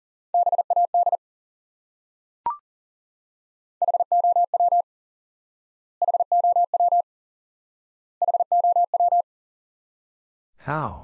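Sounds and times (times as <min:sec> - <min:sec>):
morse code beeps: 0:00.4 - 0:01.2, 0:03.8 - 0:04.8, 0:06.0 - 0:07.0, 0:08.2 - 0:09.2.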